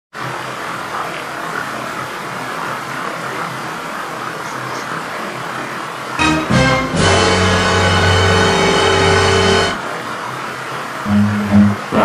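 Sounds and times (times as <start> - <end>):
steady rushing noise: 6.2 - 12.0.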